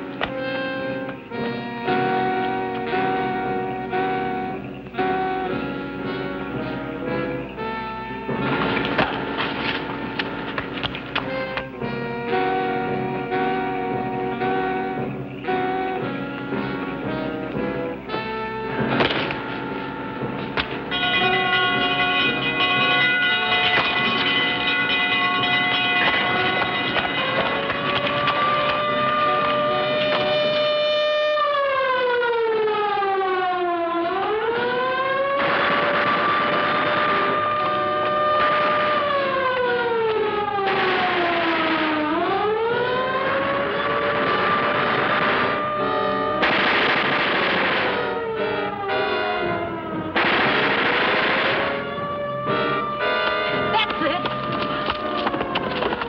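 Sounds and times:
orchestral film score: 0:00.0 - 0:31.0, 0:34.0 - 0:56.0
bursts of noise: 0:00.0 - 0:31.6, 0:34.0 - 0:56.0
siren wailing: 0:00.0 - 0:56.0.

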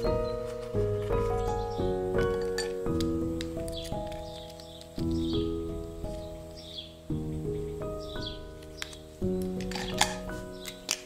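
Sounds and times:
calm instrumental music: 0:00.0 - 0:11.0
pens clicking together: 0:08.6 - 0:11.0.

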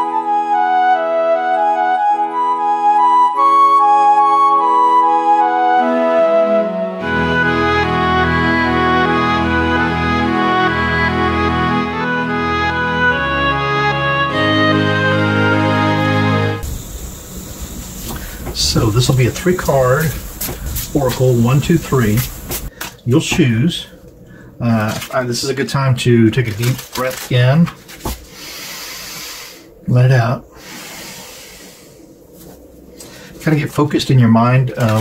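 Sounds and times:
slow exhaled breath: 0:17.5 - 0:18.6, 0:24.2 - 0:24.6, 0:28.2 - 0:29.8, 0:30.5 - 0:33.4
man's voice: 0:18.6 - 0:20.2, 0:20.9 - 0:22.3, 0:23.1 - 0:23.9, 0:33.4 - 0:35.0
cards sliding and rustling: 0:26.5 - 0:28.6, 0:34.8 - 0:35.0.

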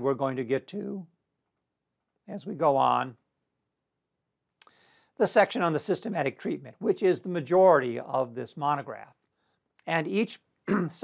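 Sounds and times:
man speaking: 0:00.0 - 0:01.1, 0:02.2 - 0:03.2, 0:05.2 - 0:09.2, 0:09.8 - 0:11.0
short breath: 0:04.6 - 0:05.2.

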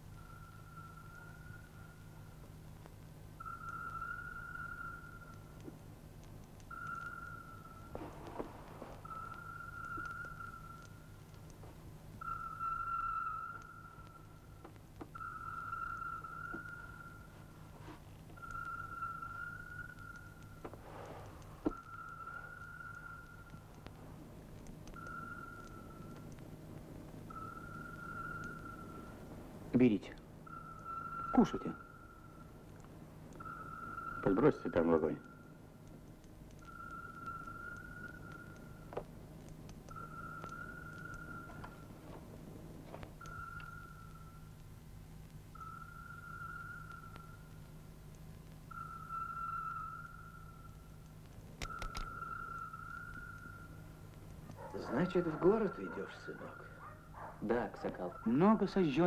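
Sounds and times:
low steady hum: 0:00.0 - 0:59.0
high whistling tone: 0:00.1 - 0:02.1, 0:03.4 - 0:05.6, 0:06.7 - 0:11.1, 0:12.2 - 0:23.9, 0:24.9 - 0:26.4, 0:27.3 - 0:32.6, 0:33.4 - 0:35.6, 0:36.6 - 0:38.9, 0:39.9 - 0:42.0, 0:43.2 - 0:44.6, 0:45.5 - 0:47.6, 0:48.7 - 0:51.0, 0:51.6 - 0:59.0.

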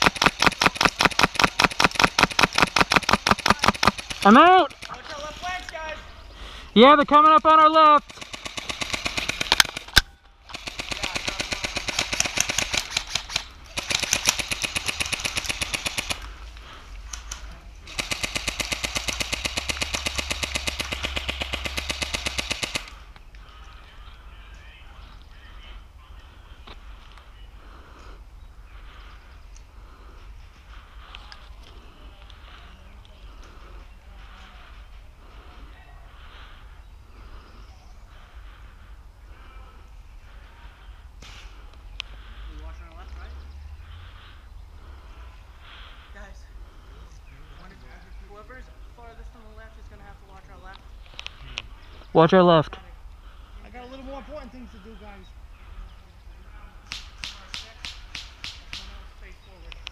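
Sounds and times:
airsoft rifle full-auto bursts: 0:00.0 - 0:04.6, 0:07.8 - 0:16.3, 0:17.9 - 0:23.0.

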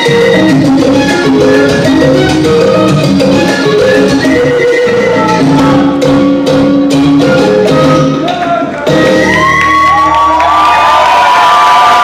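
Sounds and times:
salsa music: 0:00.0 - 0:12.0
audience cheering and whooping: 0:08.4 - 0:12.0.

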